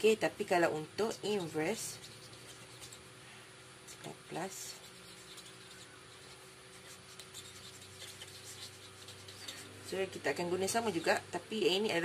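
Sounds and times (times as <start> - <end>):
marker pen scratching on paper: 1.1 - 3.0, 4.6 - 11.0.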